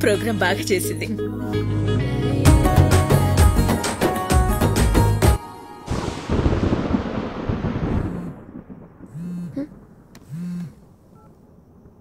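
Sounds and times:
thunderclap rumbling: 0:05.9 - 0:12.0
mobile phone buzzing: 0:09.2 - 0:11.3.

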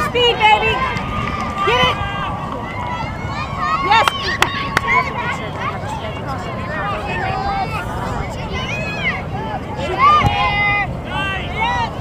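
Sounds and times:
spectators and players shouting: 0:00.0 - 0:12.0.

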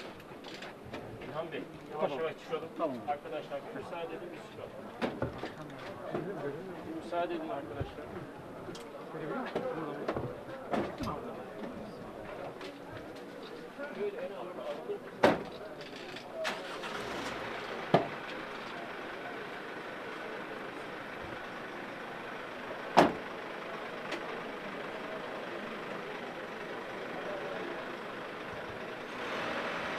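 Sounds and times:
steady background noise: 0:00.0 - 0:29.9.

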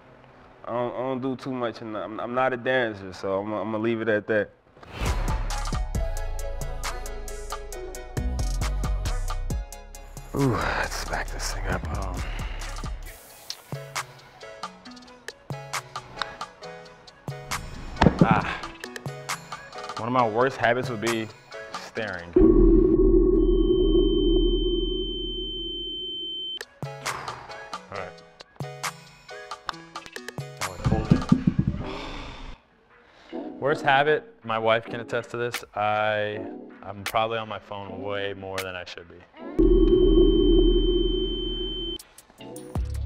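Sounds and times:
dense low rumble: 0:22.4 - 0:25.2, 0:30.9 - 0:31.9
steady high tone: 0:22.4 - 0:26.4, 0:39.6 - 0:42.0.

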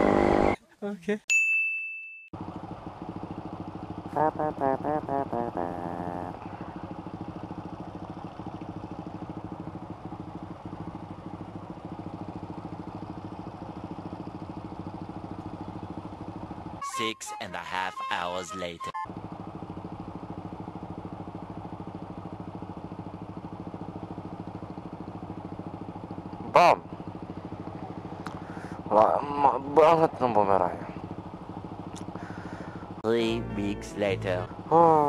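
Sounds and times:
motorcycle engine idling: 0:02.4 - 0:16.9, 0:19.0 - 0:35.0
person laughing: 0:04.2 - 0:06.4.

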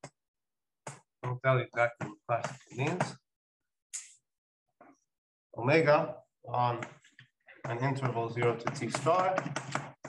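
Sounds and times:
man speaking: 0:01.2 - 0:03.2, 0:05.6 - 0:06.9, 0:07.6 - 0:09.5.

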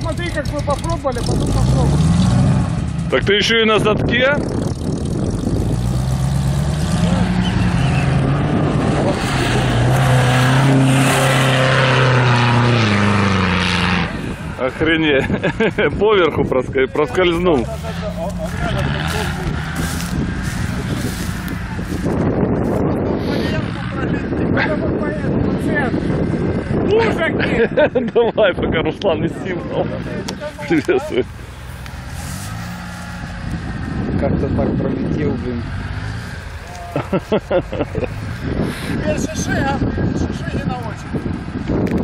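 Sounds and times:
off-road engine running: 0:00.0 - 0:42.0
wind rushing over microphone: 0:00.0 - 0:42.0
person laughing: 0:15.1 - 0:16.0, 0:17.6 - 0:19.5, 0:27.4 - 0:28.3, 0:36.8 - 0:38.2
low rumble: 0:16.4 - 0:27.9.

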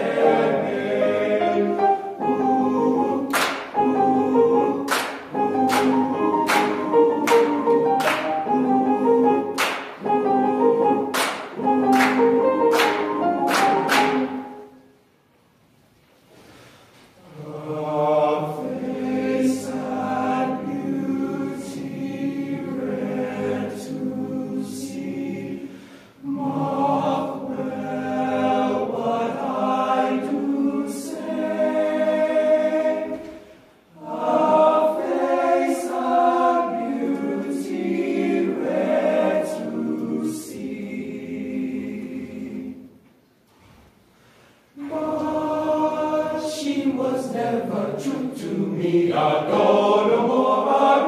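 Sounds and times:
men's choir singing: 0:00.0 - 0:14.7, 0:17.2 - 0:42.9, 0:44.8 - 0:51.0.

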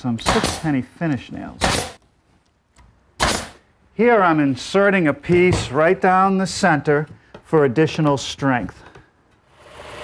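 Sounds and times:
nail gun shot: 0:00.2 - 0:00.7, 0:01.6 - 0:02.0, 0:03.2 - 0:03.6.

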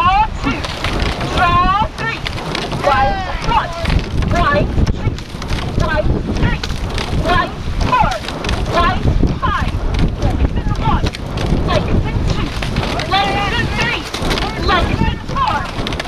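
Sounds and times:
water rushing past boat: 0:00.0 - 0:16.0
wind buffeting microphone: 0:00.0 - 0:16.0.

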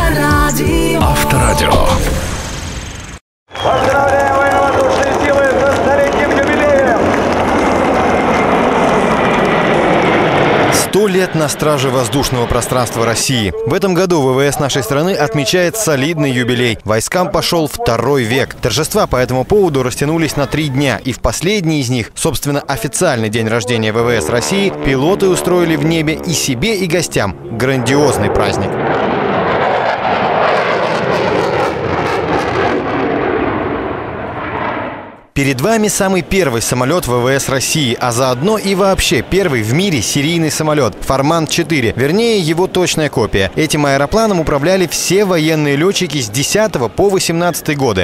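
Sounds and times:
fighter jets flying overhead: 0:01.9 - 0:16.8, 0:22.0 - 0:47.8.

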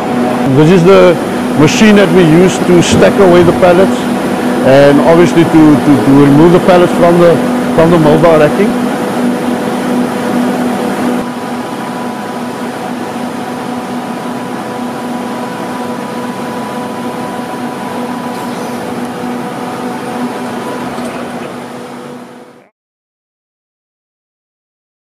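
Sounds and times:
freezer machine hum: 0:00.0 - 0:22.7.

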